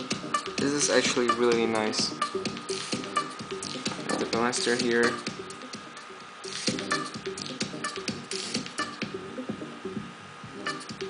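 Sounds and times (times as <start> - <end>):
electronic music with drum-machine beat: 0.0 - 11.0.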